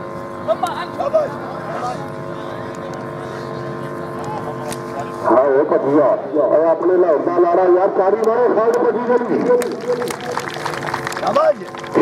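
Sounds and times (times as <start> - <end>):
mechanical drone: 0.0 - 12.0.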